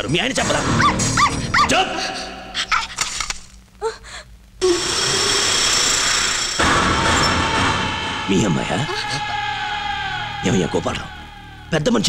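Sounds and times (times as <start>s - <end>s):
loud steady rushing noise: 4.6s - 12.0s.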